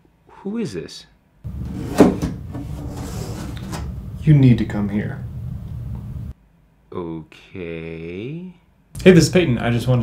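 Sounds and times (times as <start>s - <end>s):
steady low hum: 1.4s - 9.1s.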